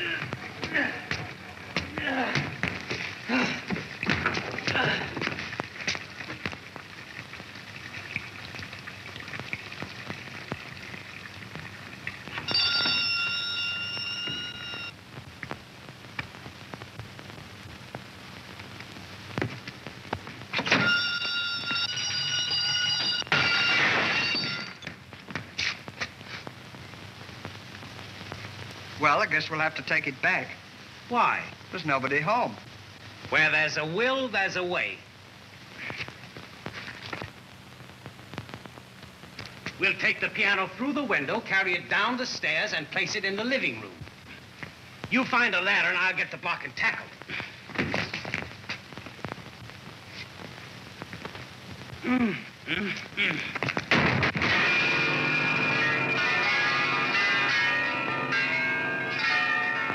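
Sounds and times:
knocks and thumps: 0.2s - 6.6s, 47.7s - 48.8s
electric doorbell ringing: 12.4s - 14.9s, 20.8s - 24.8s, 54.6s - 59.9s.

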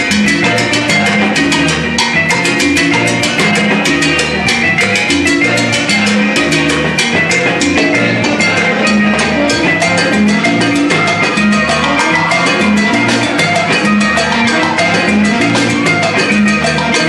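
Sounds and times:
bass line: 0.0s - 17.0s
salsa band playing live: 0.0s - 17.0s.

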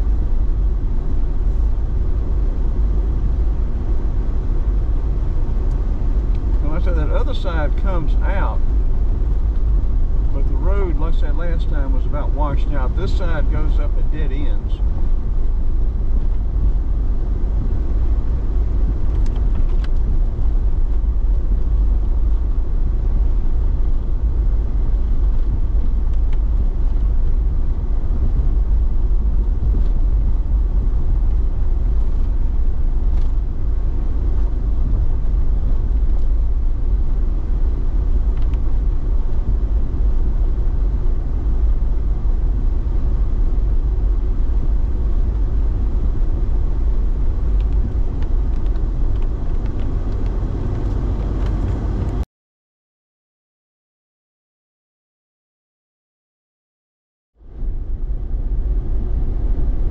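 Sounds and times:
vehicle engine and tyres rumbling: 0.0s - 52.2s, 57.4s - 59.9s.

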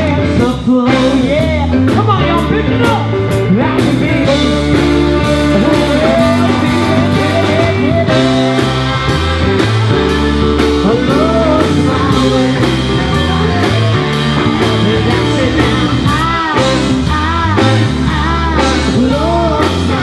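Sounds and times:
bass guitar: 0.0s - 20.0s
drum kit beat: 0.0s - 20.0s
electric guitar: 0.0s - 20.0s
saxophone lead: 2.3s - 20.0s.

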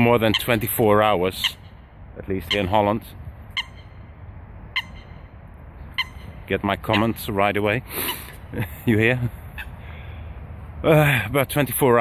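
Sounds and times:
bird calling sharply: 0.0s - 2.9s, 3.5s - 4.1s, 4.7s - 8.5s.

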